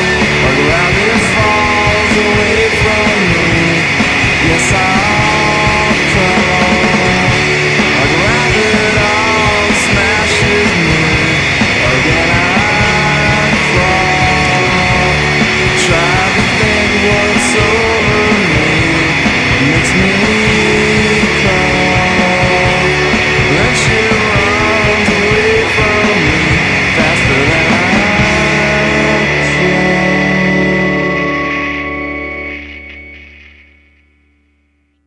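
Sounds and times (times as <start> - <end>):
bass and drums: 0.0 - 34.7
distorted electric guitar: 0.0 - 35.0.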